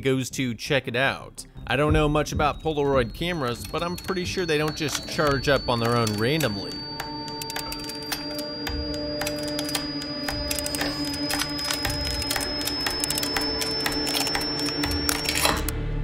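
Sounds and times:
low musical drone: 1.5s - 16.0s
high whine climbing: 1.6s - 15.7s.

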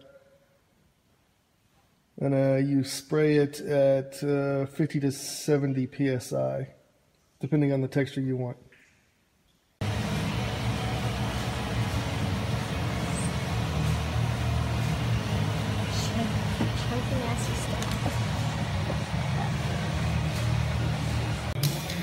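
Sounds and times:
machine running: 9.8s - 22.0s.

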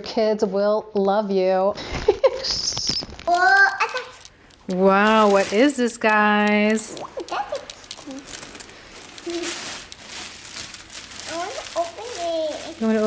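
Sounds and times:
cellophane crinkling: 2.6s - 13.0s.

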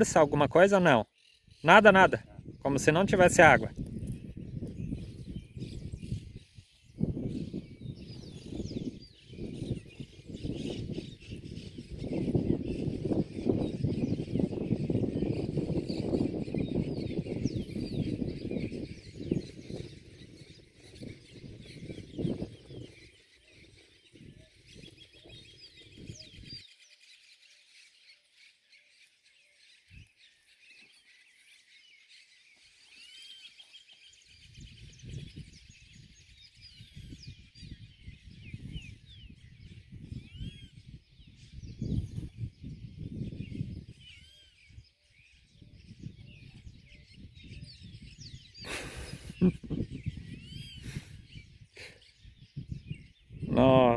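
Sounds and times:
birds chirping and calling: 0.0s - 53.9s.

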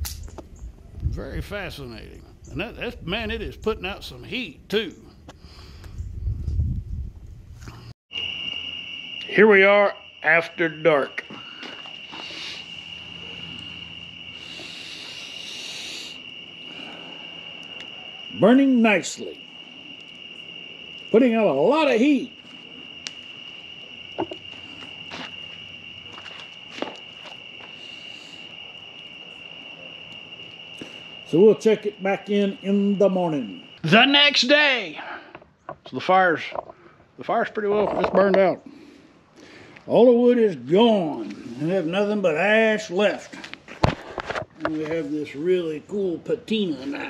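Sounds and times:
crickets trilling: 0.0s - 6.8s, 7.6s - 47.0s
wood fire crackling: 19.0s - 30.5s
wood fire crackling and popping: 23.0s - 23.2s.

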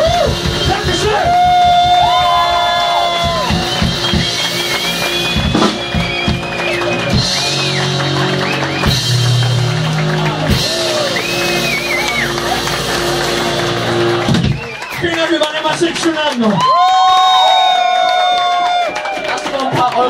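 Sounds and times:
live rock band playing: 0.0s - 15.4s
scattered drum hits: 5.4s - 6.4s.

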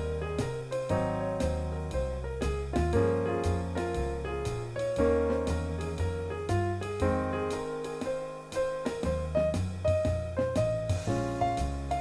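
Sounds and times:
solo jazz piano: 0.0s - 12.0s.

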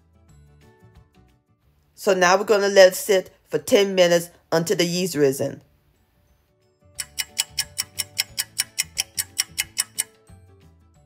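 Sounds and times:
clock ticking: 7.0s - 10.2s.

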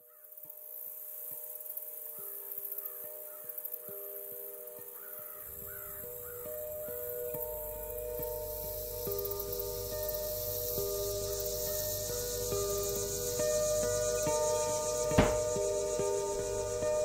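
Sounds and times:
steady high hiss: 0.0s - 17.0s
slow music of long held notes: 0.4s - 17.0s
crows cawing: 5.0s - 7.0s.

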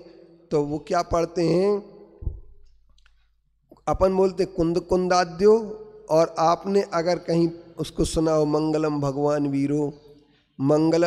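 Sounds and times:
man talking: 0.0s - 2.0s, 3.8s - 10.0s, 10.6s - 11.0s
microphone pop: 2.2s - 2.7s.

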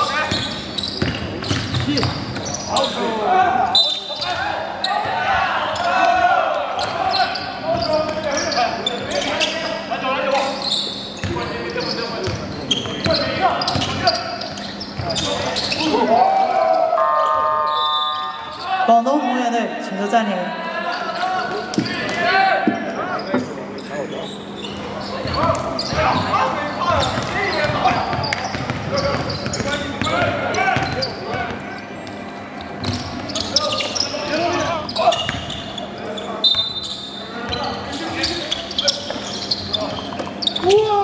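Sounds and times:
voices in a hall: 0.0s - 41.0s
electronic gym horn tone: 16.9s - 18.6s.

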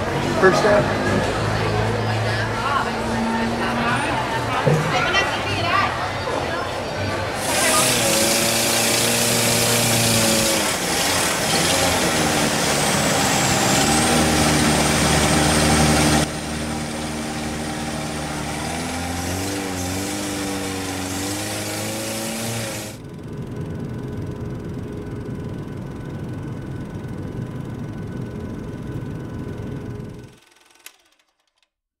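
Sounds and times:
boat engine running: 7.2s - 30.4s.

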